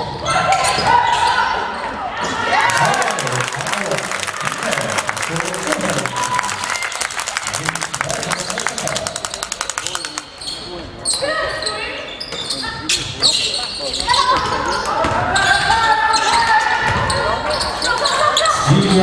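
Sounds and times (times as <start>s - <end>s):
players calling out: 0.5s - 19.0s
shoe squeaks: 10.4s - 16.4s.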